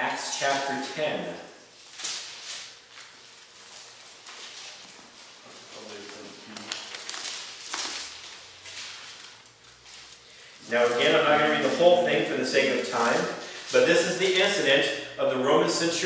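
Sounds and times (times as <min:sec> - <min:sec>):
paper pages rustling: 0:01.8 - 0:11.2, 0:12.8 - 0:13.6.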